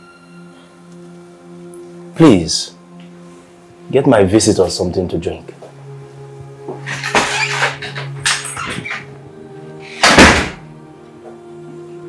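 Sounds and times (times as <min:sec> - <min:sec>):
soft background music: 0:00.0 - 0:12.0
wooden door slamming: 0:10.0 - 0:10.6.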